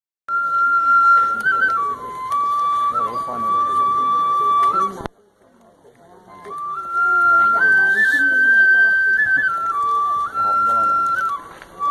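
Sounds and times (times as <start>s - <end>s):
flute playing held notes: 0.3s - 5.1s, 6.2s - 11.9s.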